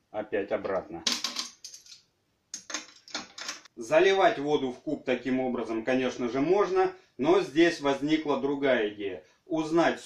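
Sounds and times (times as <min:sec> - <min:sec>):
metallic clicks and clinks: 0:01.1 - 0:02.0.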